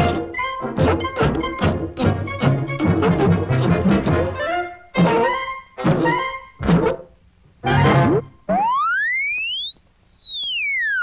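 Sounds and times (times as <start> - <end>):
cartoon whistle rising and falling: 7.7 - 11.0.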